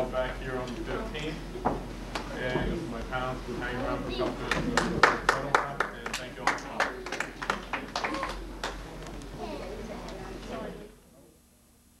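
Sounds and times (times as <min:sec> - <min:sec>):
scattered hand claps: 0:04.4 - 0:08.8.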